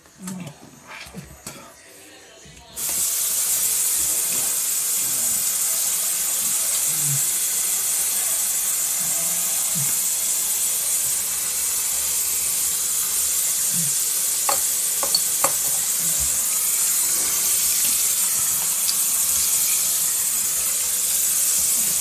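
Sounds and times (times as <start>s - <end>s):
water running into sink: 2.8s - 22.0s.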